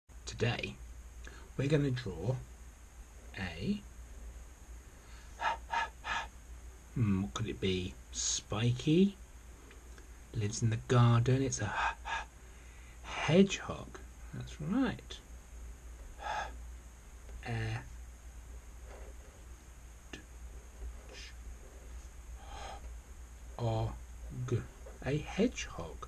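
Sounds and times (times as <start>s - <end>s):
person gasping: 5.0s - 6.3s, 16.2s - 16.6s, 22.4s - 22.9s.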